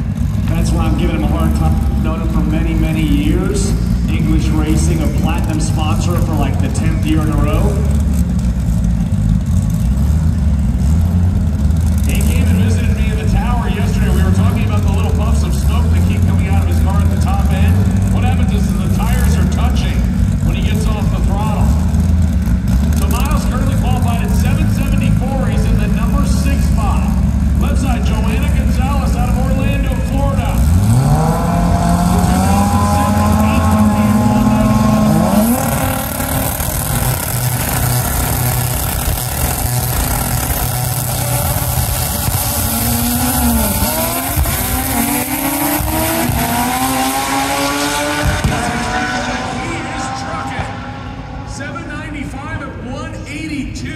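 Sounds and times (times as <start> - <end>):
low steady engine note: 0.0 - 46.8
car engine revving: 0.0 - 53.2
voices: 0.4 - 7.9, 12.0 - 21.8, 23.0 - 30.7, 32.0 - 36.2, 49.3 - 53.9.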